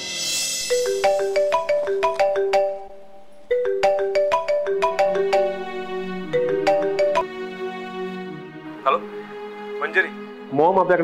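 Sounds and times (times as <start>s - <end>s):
marimba phone ringtone: 0.6s - 7.3s.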